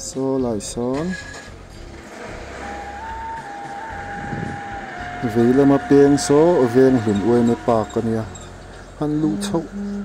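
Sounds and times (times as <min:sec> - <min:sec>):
vehicle engine low rumble: 0:01.5 - 0:10.0
thin high whine: 0:02.0 - 0:08.9.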